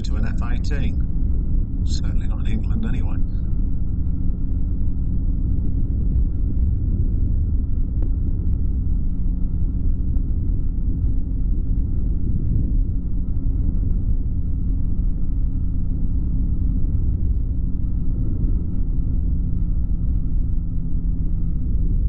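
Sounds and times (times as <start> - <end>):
aircraft engine drone: 0.0 - 22.0
faint steady whine: 0.0 - 22.0.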